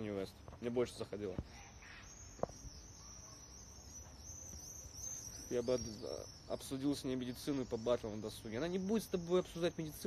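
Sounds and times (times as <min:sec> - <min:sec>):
high insect chirping: 0:01.5 - 0:10.0.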